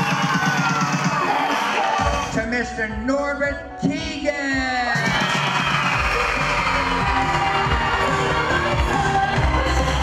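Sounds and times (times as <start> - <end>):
crowd cheering and clapping: 0.0 - 2.3, 4.8 - 10.0
upbeat pop music: 0.0 - 10.0.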